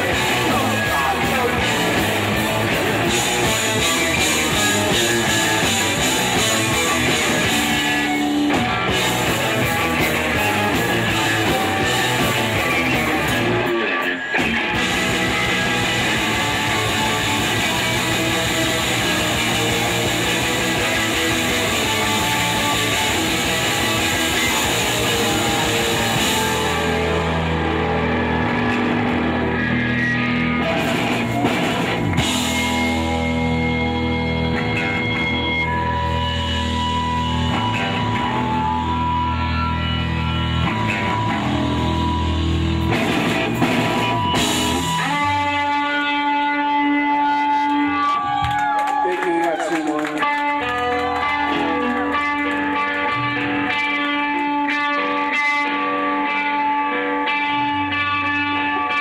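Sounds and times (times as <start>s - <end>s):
bass guitar: 0.0s - 59.0s
drums: 0.0s - 59.0s
electric guitars: 0.0s - 59.0s.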